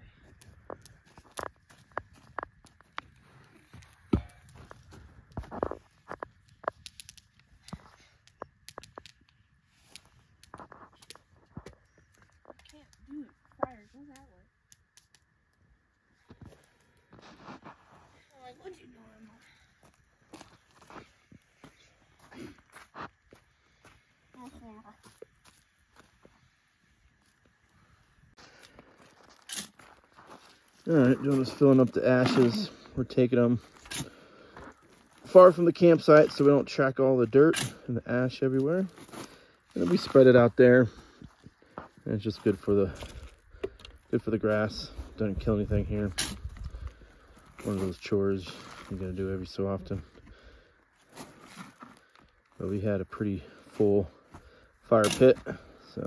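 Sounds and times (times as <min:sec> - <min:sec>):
faint clicks and crackles: 0:00.2 - 0:19.0.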